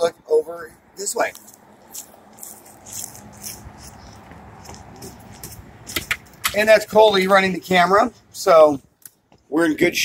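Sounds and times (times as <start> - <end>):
footsteps on gravel: 1.2 - 7.2.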